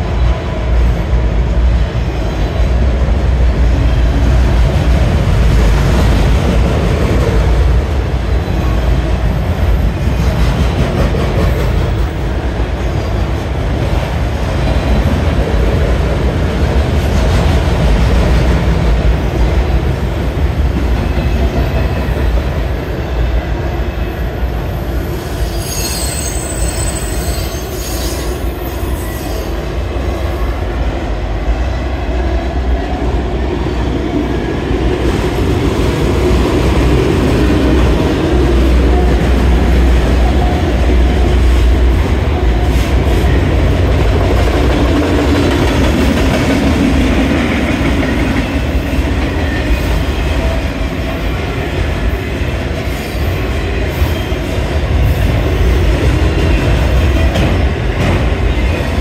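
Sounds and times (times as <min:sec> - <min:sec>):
freight train rumbling and rattling: 0:00.0 - 0:59.0
high wheel squeal: 0:25.1 - 0:29.6.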